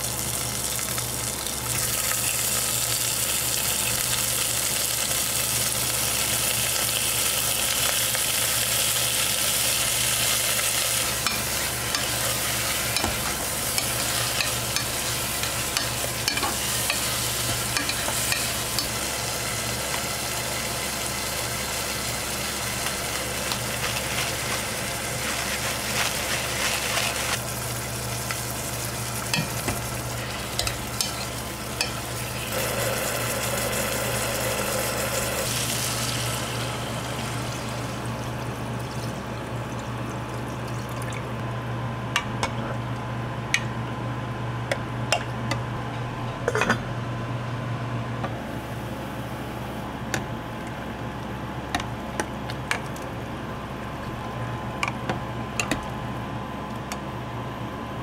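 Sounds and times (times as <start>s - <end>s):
chicken sizzling in oil: 0.0s - 40.7s.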